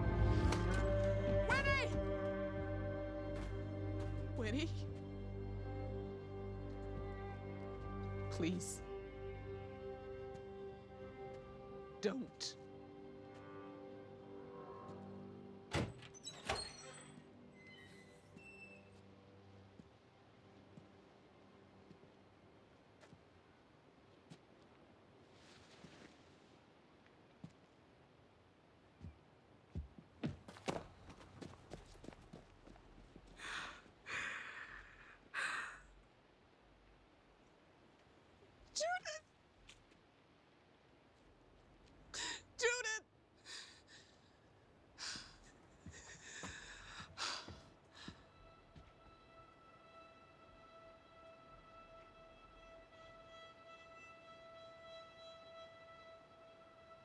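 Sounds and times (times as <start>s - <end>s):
faint music drone: 0.0s - 16.2s, 16.9s - 24.1s, 44.8s - 57.0s
woman sobbing: 45.0s - 48.3s.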